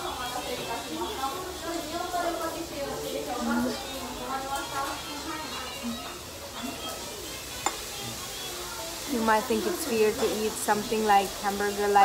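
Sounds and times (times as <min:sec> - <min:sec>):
diners talking: 0:00.0 - 0:05.7.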